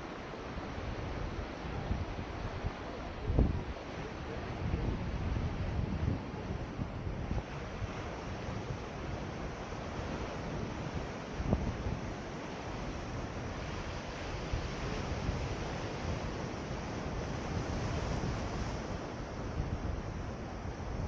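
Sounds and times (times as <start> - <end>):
surf washing over rocks: 0.0 - 21.0
wind buffeting microphone: 0.8 - 21.0.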